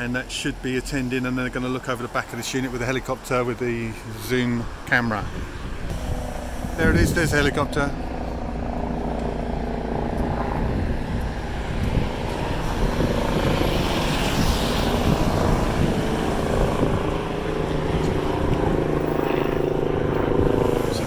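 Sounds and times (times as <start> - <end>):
helicopter rotor and engine drone: 1.5 - 21.0.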